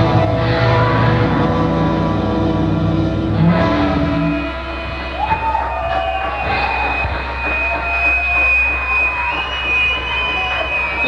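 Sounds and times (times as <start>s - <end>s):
wavering low tones: 0.0s - 5.2s
crowd noise: 0.0s - 11.0s
high steady whine: 0.0s - 11.0s
live rock band: 0.0s - 11.0s.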